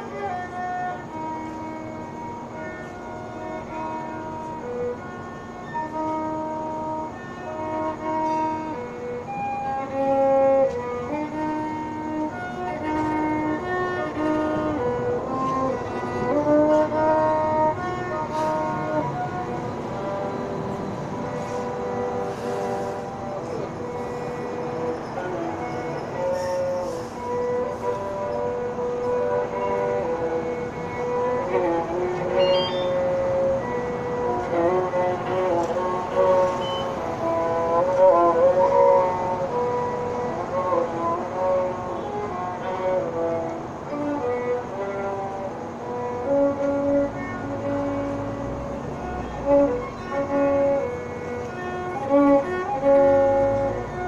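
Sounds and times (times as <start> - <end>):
solo violin slow melody: 0.0 - 54.0.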